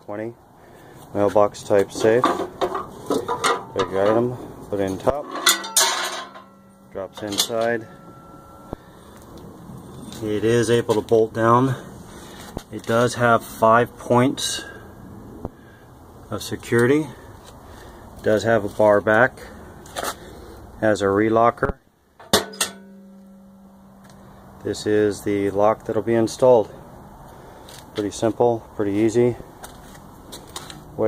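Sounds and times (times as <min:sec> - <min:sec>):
low background noise: 0:00.0 - 0:31.0
metal struck and ringing: 0:02.7 - 0:10.2, 0:22.2 - 0:24.6.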